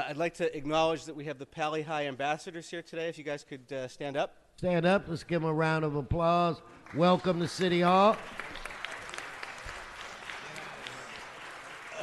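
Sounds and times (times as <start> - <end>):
audience applauding: 6.8 - 12.0.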